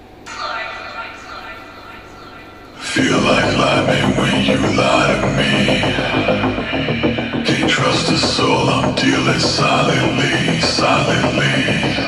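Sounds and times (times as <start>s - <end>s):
hissy drone with held tones: 0.0s - 12.0s.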